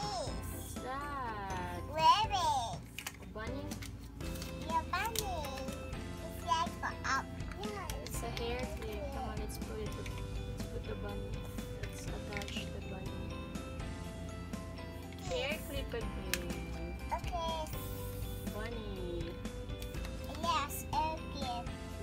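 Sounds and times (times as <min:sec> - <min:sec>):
young child's voice: 0:00.0 - 0:00.7, 0:01.9 - 0:02.9, 0:04.6 - 0:08.1, 0:17.1 - 0:18.1, 0:20.3 - 0:22.0
background music with held tones: 0:00.0 - 0:22.0.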